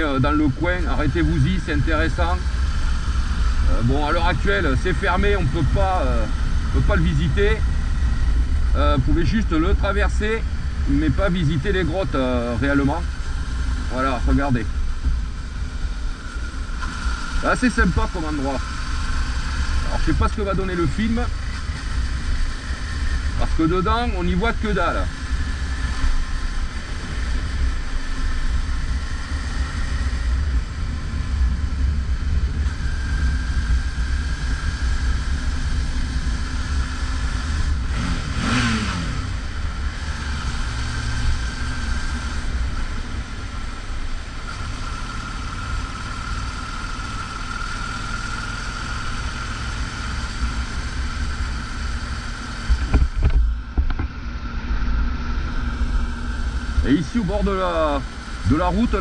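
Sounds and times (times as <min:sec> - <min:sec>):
motorcycle engine rumbling: 0:00.0 - 0:59.0.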